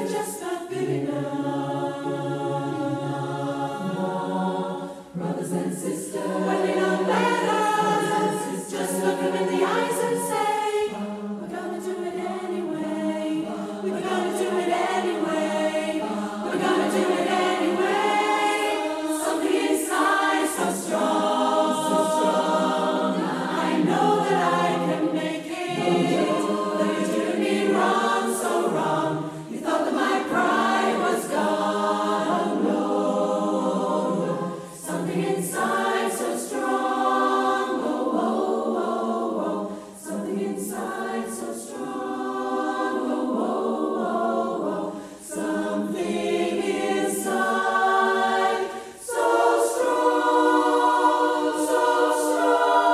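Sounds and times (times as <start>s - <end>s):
choir singing held notes: 0.0s - 52.9s.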